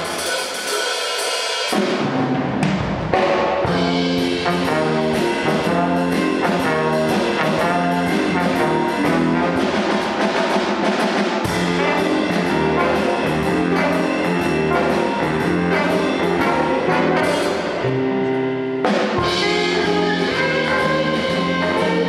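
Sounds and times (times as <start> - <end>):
big band playing jazz: 0.0 - 22.0.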